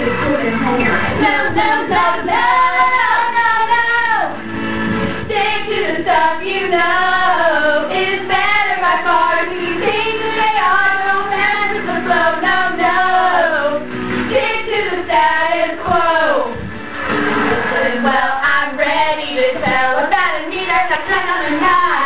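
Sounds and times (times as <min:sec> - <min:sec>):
girls singing into microphones: 0:00.0 - 0:04.5, 0:05.1 - 0:22.0
music: 0:00.0 - 0:22.0.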